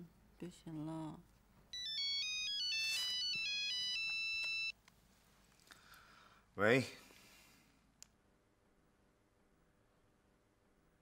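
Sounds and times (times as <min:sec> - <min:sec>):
phone ringtone beeping melody: 0:01.7 - 0:04.8.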